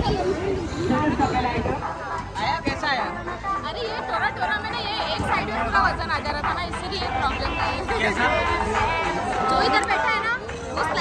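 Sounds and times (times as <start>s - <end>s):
crowd chatter: 0.0s - 11.0s
voices talking: 0.0s - 11.0s.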